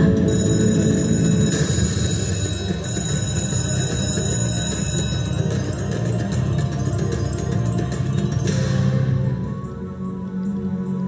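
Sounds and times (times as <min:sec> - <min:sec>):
slot machine chimes: 0:00.0 - 0:09.8
slot machine celebration music: 0:00.0 - 0:11.0.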